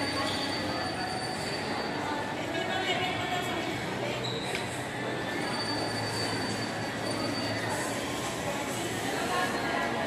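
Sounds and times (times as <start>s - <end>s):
echoing mall ambience: 0.0s - 10.0s.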